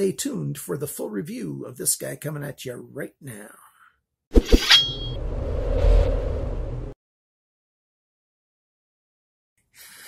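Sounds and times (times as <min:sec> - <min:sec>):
steady low rumble: 0:05.0 - 0:07.0.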